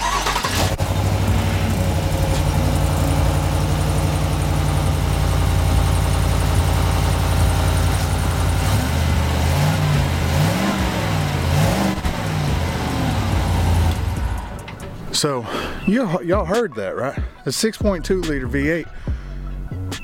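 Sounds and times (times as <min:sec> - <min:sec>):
truck engine idling: 0:00.0 - 0:16.6.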